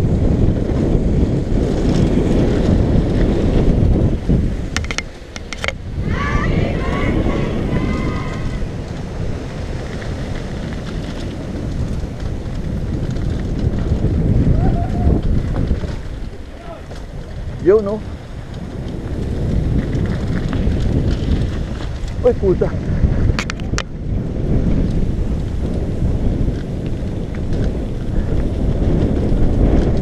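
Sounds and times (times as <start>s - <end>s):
bike tyres rumbling on dirt: 0.0s - 30.0s
wind buffeting microphone: 0.0s - 30.0s.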